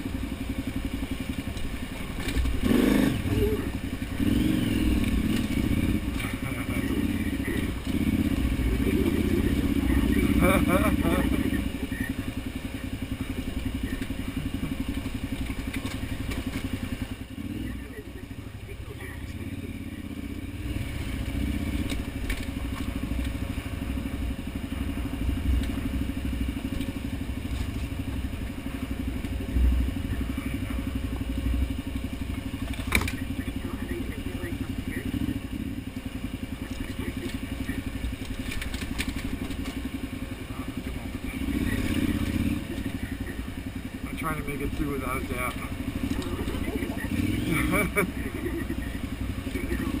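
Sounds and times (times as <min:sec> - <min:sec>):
motorcycle engine running: 0:00.0 - 0:50.0.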